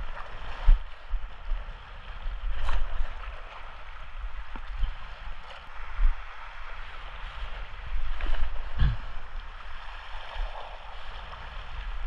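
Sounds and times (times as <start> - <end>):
small waves lapping on rocks: 0.0 - 12.0
low rumble: 8.6 - 9.4.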